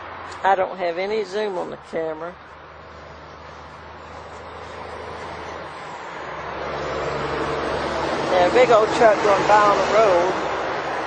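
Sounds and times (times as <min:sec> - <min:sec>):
truck driving by: 0:02.6 - 0:11.0.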